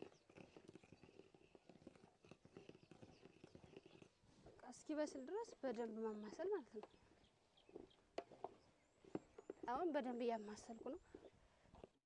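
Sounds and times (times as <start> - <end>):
stick stirring thick porridge: 0.0 - 4.1.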